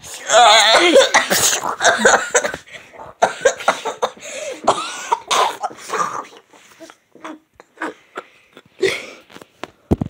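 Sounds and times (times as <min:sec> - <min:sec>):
person coughing: 0:00.5 - 0:06.4, 0:07.2 - 0:09.2.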